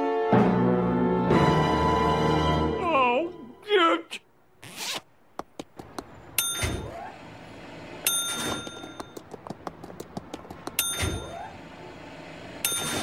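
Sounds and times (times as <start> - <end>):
bell dinging: 6.4 - 6.9, 8.1 - 9.2, 10.8 - 11.4.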